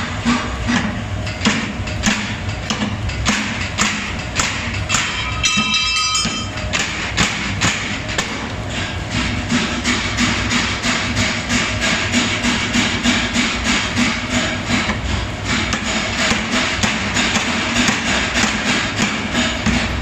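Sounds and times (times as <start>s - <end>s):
power hammer striking hot metal: 0.2s - 20.0s.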